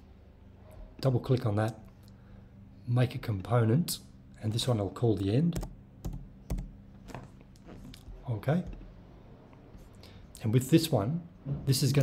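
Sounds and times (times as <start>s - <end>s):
computer keyboard taps: 5.6s - 7.2s.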